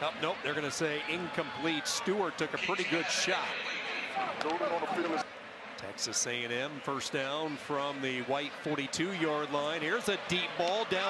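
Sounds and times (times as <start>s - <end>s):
man commentating on football: 0.0s - 11.0s.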